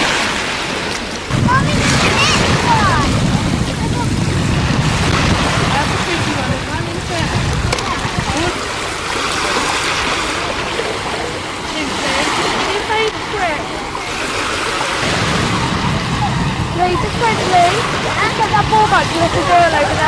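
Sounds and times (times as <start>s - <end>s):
wind rumble on microphone: 0.0s - 11.6s, 12.3s - 20.0s
distant voices: 0.0s - 20.0s
small waves on sandy beach: 0.0s - 20.0s.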